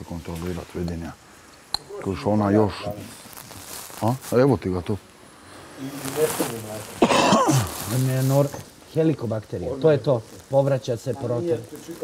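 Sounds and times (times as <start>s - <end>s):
man clearing his throat: 7.0s - 7.8s.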